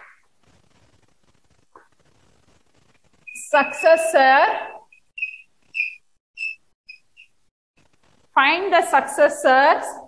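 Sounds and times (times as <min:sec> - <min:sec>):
chalk squeaking on blackboard: 0:00.4 - 0:08.2.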